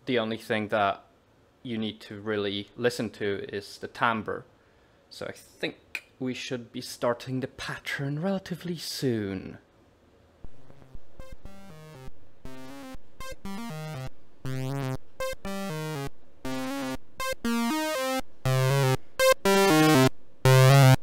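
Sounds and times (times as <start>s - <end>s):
plucked low synth notes: 10.4s - 21.0s.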